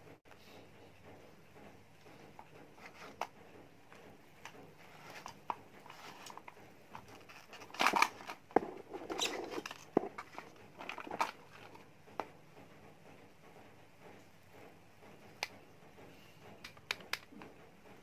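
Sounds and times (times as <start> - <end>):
plastic scraping rattle: 2.1 - 12.3
plastic clicks: 3.9 - 11.8.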